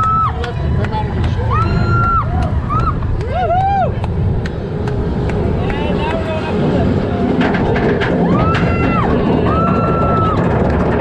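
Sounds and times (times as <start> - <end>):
roller coaster train rumbling on track: 0.0 - 11.0.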